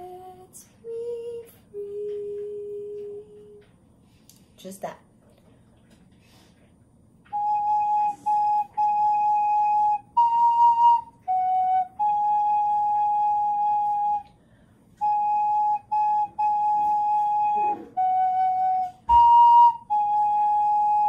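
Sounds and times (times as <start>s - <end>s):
recorder playing slow tune: 7.3s - 14.3s, 15.0s - 21.0s.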